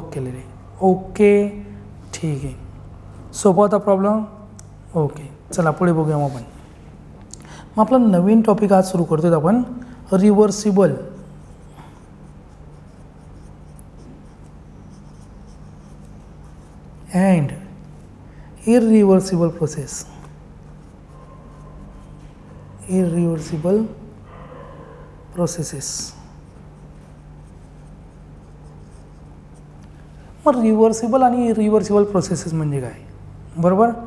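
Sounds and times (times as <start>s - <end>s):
steady low hum: 0.0s - 34.0s
pen scratching on paper: 11.0s - 17.1s, 26.4s - 29.8s.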